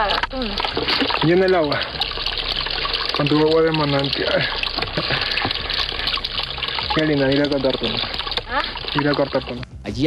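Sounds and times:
water trickling into plastic bottle: 0.0 - 9.7.

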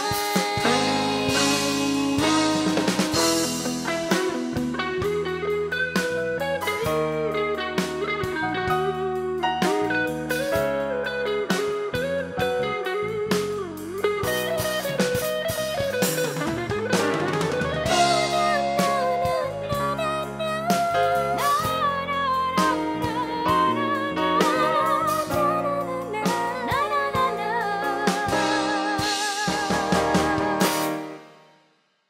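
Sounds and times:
lead guitar bending notes: 0.0 - 31.0
bass keyboard and drums: 0.0 - 31.3.

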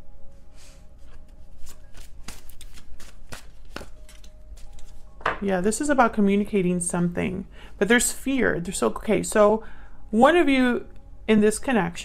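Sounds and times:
cards being shuffled: 1.0 - 5.0.

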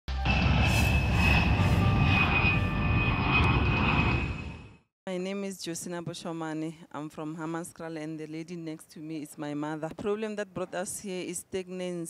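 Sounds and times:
jet engine rush and whine: 0.1 - 4.9.

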